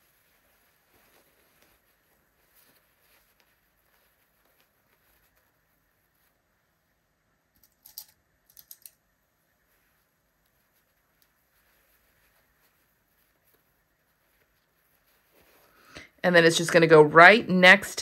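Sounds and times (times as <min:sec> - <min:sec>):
cloth rustling: 0:00.0 - 0:17.3.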